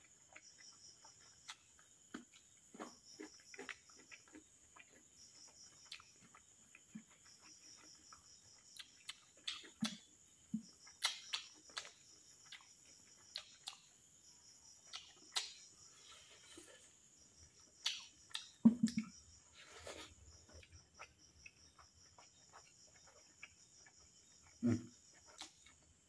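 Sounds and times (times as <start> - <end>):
crickets chirping: 0.0 - 26.0
man chewing with mouth clicks: 0.0 - 26.0.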